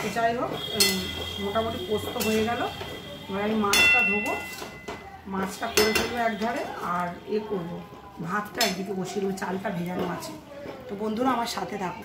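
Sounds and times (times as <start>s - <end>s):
metal spatula scraping metal pan: 2.1s - 2.6s.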